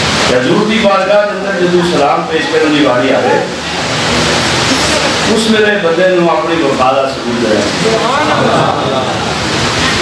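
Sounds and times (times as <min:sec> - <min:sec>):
steady rushing hiss: 0:00.0 - 0:10.0.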